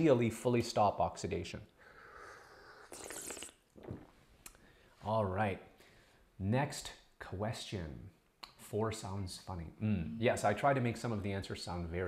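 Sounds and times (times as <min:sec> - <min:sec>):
person slurping tea: 0:02.2 - 0:04.2.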